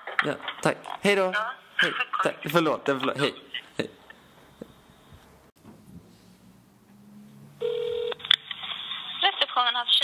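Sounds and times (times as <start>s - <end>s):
telephone beep: 7.6s - 8.2s.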